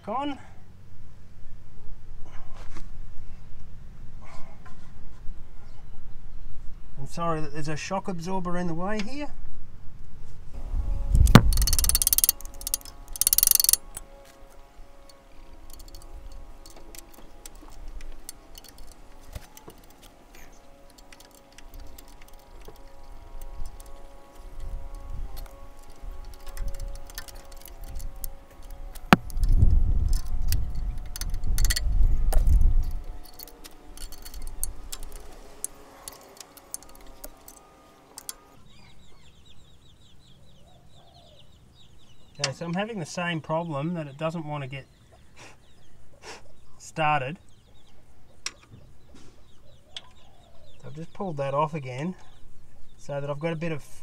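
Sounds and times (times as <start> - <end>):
small metallic clicks and clinks: 11.4 - 14.1, 15.6 - 38.5.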